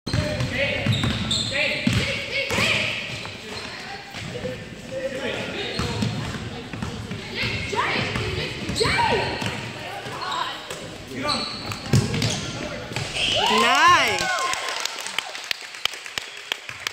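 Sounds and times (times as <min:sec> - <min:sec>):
sneakers squeaking: 0:00.1 - 0:14.2.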